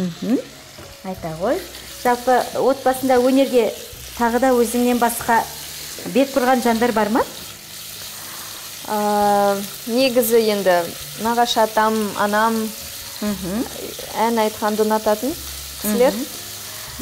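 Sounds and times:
food sizzling in a frying pan: 0.0 - 17.0.

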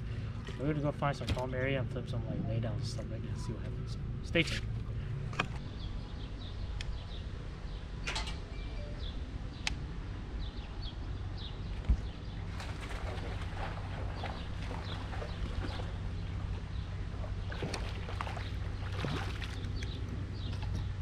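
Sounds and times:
low steady hum: 0.0 - 21.0
small birds chirping: 2.0 - 21.0
wind rumbling on microphone: 9.0 - 21.0.

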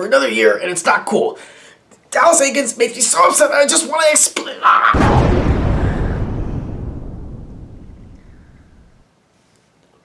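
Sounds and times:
low rumbling boom: 5.0 - 9.0.

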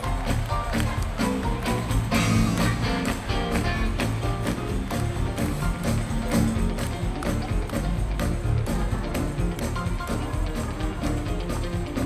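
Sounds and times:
live band music: 0.0 - 12.0
steady drum beat: 0.0 - 12.0.

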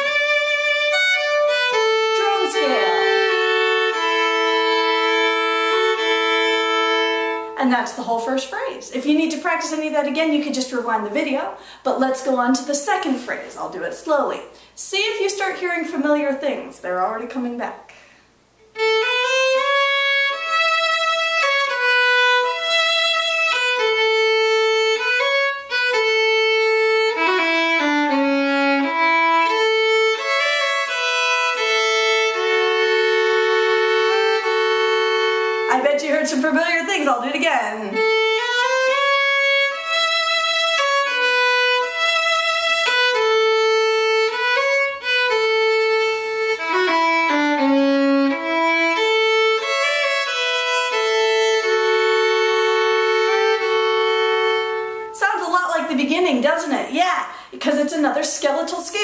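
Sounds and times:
solo fiddle playing a waltz: 0.0 - 7.7, 18.6 - 55.9.

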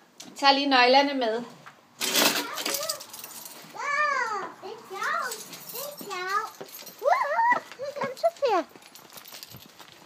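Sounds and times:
children squealing: 7.0 - 7.8.

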